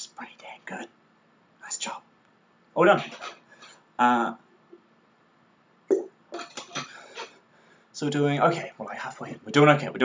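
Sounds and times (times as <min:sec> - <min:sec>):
person gulping: 0:05.9 - 0:06.7.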